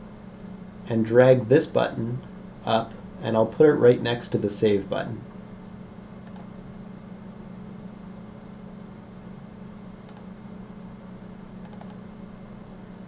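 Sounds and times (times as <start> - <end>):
steady low hum: 0.0 - 13.0
computer mouse clicks: 6.2 - 6.5, 10.0 - 10.3, 11.6 - 12.0.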